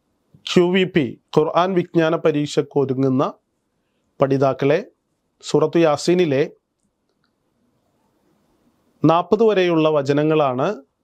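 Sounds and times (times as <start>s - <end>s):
man speaking: 0.4s - 3.4s, 4.2s - 6.6s, 9.0s - 11.0s.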